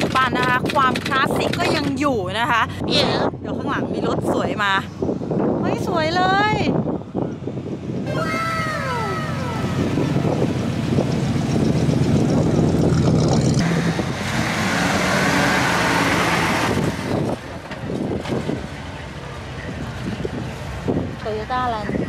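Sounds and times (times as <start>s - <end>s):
person exclaiming: 8.1s - 9.9s.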